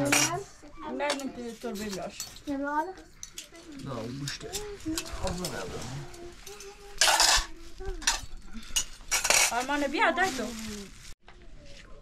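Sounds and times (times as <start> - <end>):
metal spoon scraping pot: 3.2 - 10.0.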